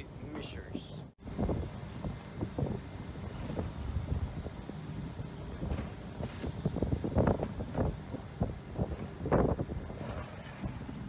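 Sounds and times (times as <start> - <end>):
wind buffeting microphone: 1.2 - 11.0.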